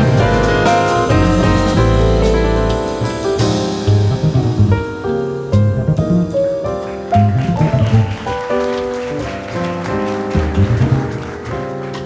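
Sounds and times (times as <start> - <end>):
double bass notes: 0.0 - 8.3, 10.4 - 11.2
piano chords: 0.0 - 12.0.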